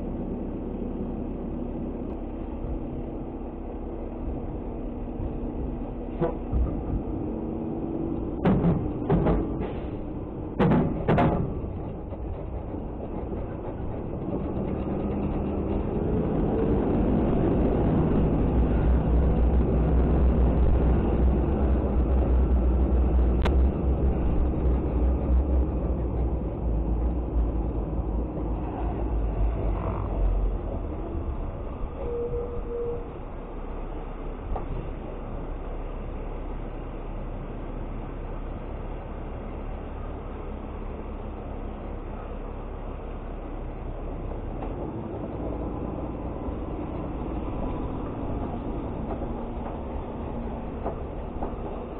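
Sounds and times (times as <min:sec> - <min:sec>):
garbage truck diesel engine running: 0:00.0 - 0:51.9.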